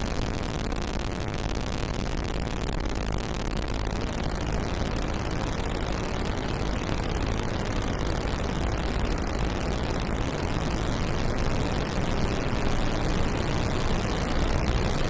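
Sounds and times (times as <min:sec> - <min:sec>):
noisy synthesizer drone: 0:00.0 - 0:15.0.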